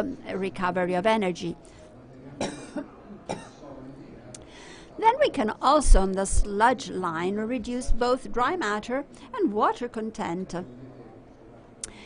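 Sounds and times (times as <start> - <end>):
man coughing into microphone: 2.4 - 3.6.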